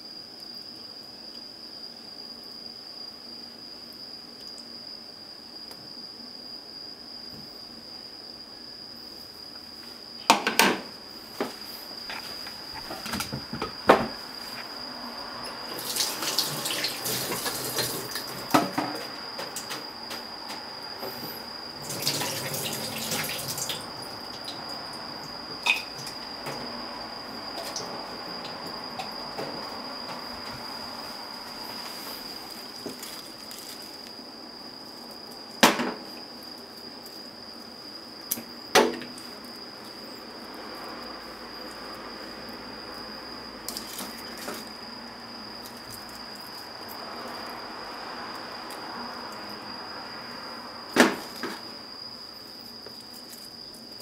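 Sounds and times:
water running from kitchen tap: 0:15.7 - 0:18.4, 0:21.8 - 0:23.9
steady high-pitched whine: 0:16.9 - 0:52.9.

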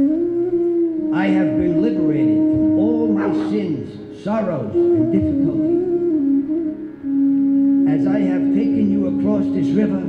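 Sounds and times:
held musical note: 0:00.0 - 0:10.0
person crying out in pitch: 0:03.0 - 0:04.2.

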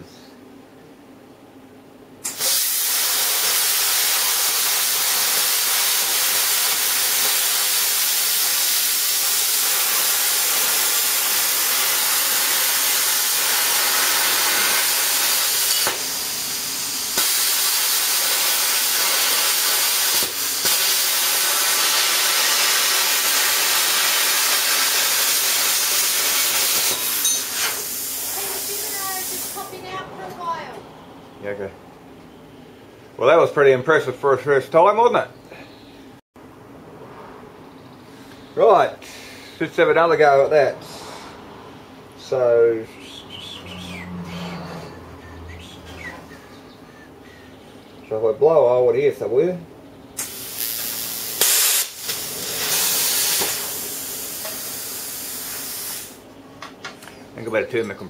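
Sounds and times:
plasma cutter arc hissing: 0:02.2 - 0:29.8, 0:50.2 - 0:56.2.

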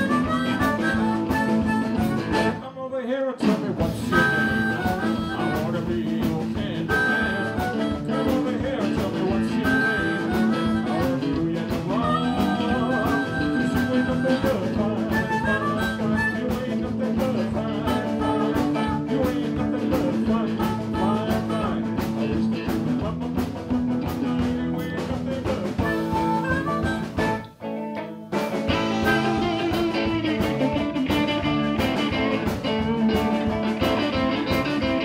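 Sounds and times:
amplified harmonica: 0:00.0 - 0:02.7, 0:03.9 - 0:22.5, 0:25.8 - 0:35.0
live blues band playing: 0:00.0 - 0:02.7, 0:03.4 - 0:35.0.

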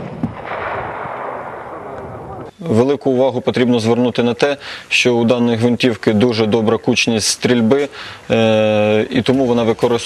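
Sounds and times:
rifle shot rolling echo: 0:00.0 - 0:02.5.

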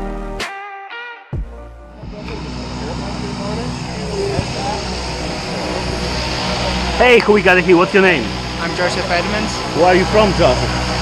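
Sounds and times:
low mechanical drone: 0:01.8 - 0:11.0
faint voices talking: 0:02.0 - 0:11.0.

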